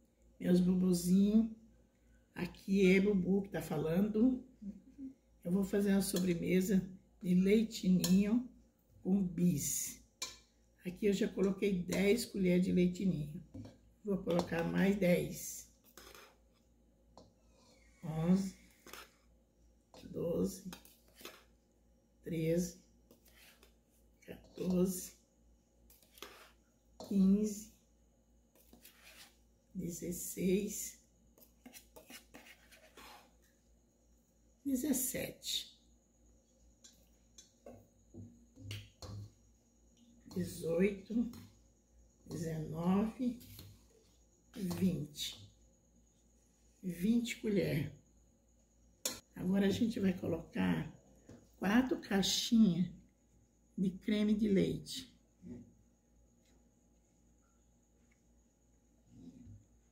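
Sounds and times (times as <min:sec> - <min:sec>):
faint steady hum: 0:00.0 - 0:54.1
metal spoon scooping powder: 0:13.5 - 0:19.3, 0:19.9 - 0:21.6, 0:23.1 - 0:25.2, 0:25.8 - 0:27.7, 0:28.5 - 0:29.5, 0:30.2 - 0:33.5.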